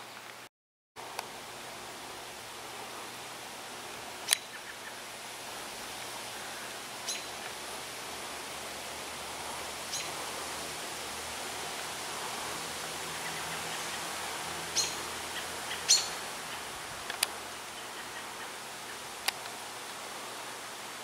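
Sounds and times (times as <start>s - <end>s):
outdoor background hiss: 0.0s - 21.0s.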